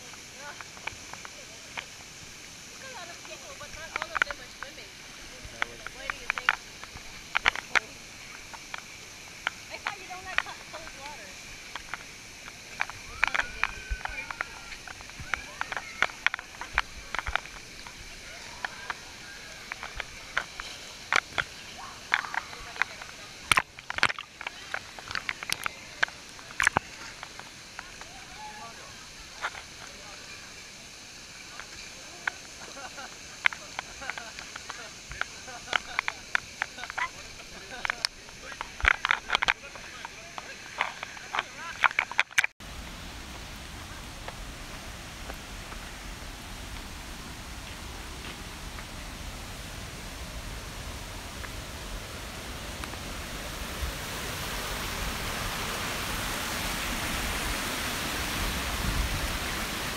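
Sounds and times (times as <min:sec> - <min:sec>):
waterfall rushing: 0:00.0 - 0:41.9, 0:42.6 - 0:59.9.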